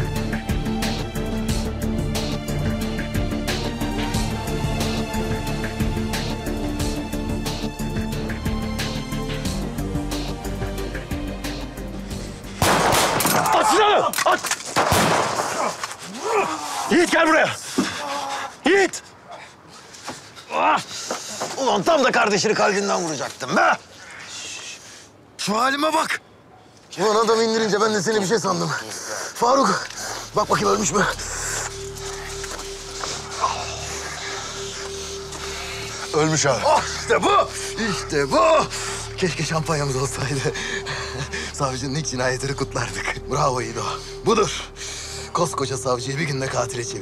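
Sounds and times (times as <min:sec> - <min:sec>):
background music: 0:00.0 - 0:15.3, 0:29.3 - 0:47.0
pistol shot: 0:12.6 - 0:13.5, 0:14.8 - 0:15.6
man crying out: 0:13.3 - 0:14.5, 0:15.6 - 0:18.8, 0:36.5 - 0:38.7
low drone: 0:29.8 - 0:47.0.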